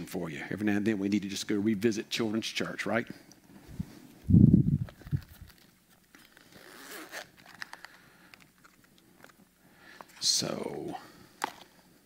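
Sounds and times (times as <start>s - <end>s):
rustling: 3.6s - 10.4s
zipper opening on hard case: 6.2s - 7.7s.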